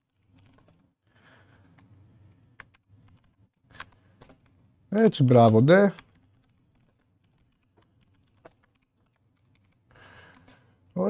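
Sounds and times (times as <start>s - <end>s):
faint keyboard typing: 0.0s - 11.0s.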